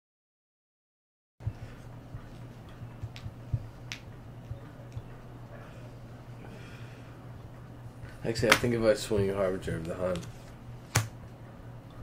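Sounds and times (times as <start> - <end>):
soft low thumps: 1.4 - 5.2
steady low hum: 1.4 - 12.0.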